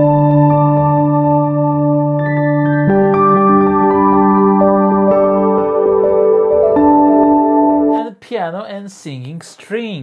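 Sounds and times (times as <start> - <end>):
synthesizer piano chord: 0.0 - 8.0
man's voice: 7.9 - 10.0.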